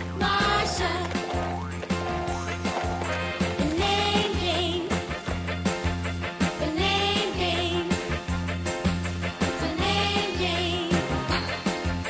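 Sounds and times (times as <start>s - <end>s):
upbeat children's song music: 0.0s - 12.0s.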